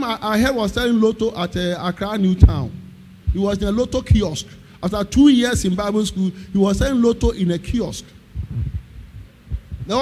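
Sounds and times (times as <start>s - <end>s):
amplified speech: 0.0s - 8.1s
soft low dull thumps: 2.4s - 4.3s, 6.7s - 10.0s.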